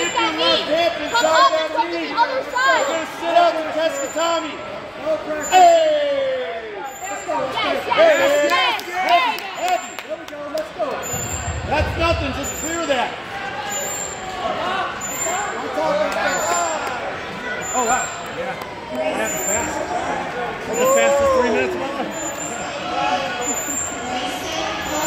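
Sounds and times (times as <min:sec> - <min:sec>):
low rumble: 0:11.1 - 0:13.0.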